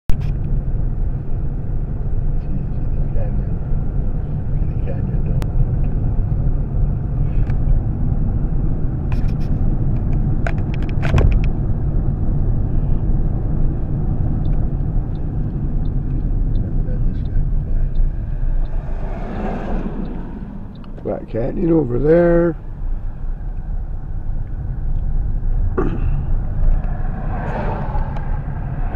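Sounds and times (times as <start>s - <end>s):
car road noise rumble: 0.1s - 28.9s.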